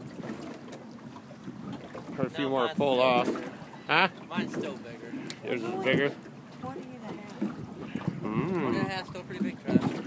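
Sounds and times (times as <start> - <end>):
river water: 0.0 - 10.0
wind: 0.0 - 10.0.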